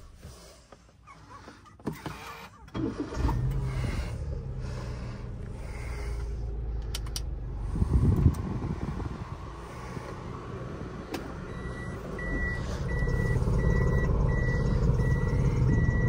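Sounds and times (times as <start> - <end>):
car engine running: 0.0 - 16.0
gear selector click: 6.8 - 7.3
reverse warning beeps: 11.5 - 16.0.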